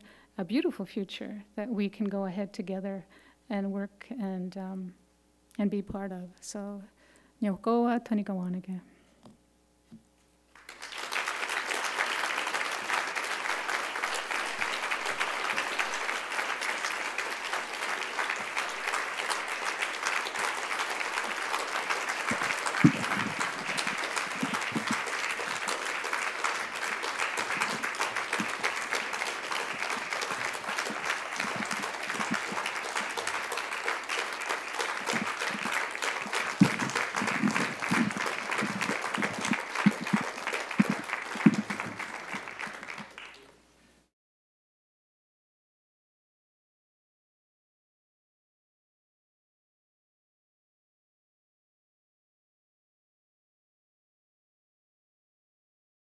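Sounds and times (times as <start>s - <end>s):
audience applauding: 10.6s - 43.5s.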